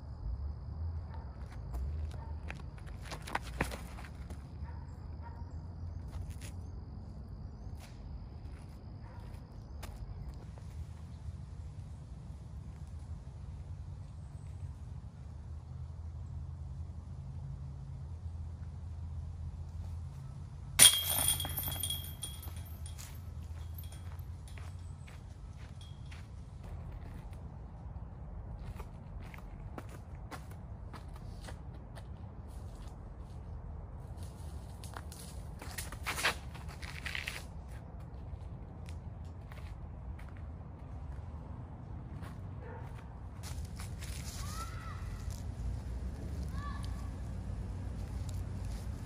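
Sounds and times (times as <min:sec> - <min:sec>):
disc hitting chain basket: 0:20.7 - 0:24.8.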